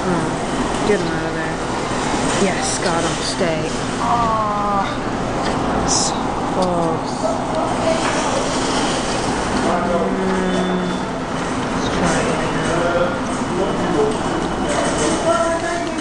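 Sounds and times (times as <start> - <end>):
hubbub of voices: 0.0 - 16.0.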